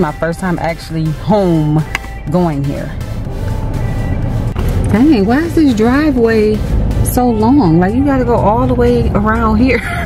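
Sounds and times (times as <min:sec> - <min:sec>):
background music: 0:00.0 - 0:10.0
car engine rumble: 0:00.0 - 0:10.0
road noise: 0:00.0 - 0:10.0.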